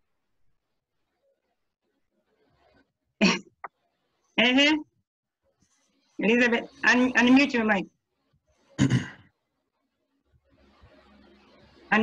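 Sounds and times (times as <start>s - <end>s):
person clearing throat: 3.2s - 3.6s, 8.8s - 9.3s.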